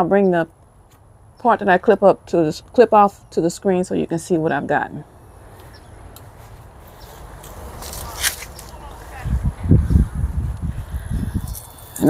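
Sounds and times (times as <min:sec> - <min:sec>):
footsteps on grass: 0:05.4 - 0:11.4.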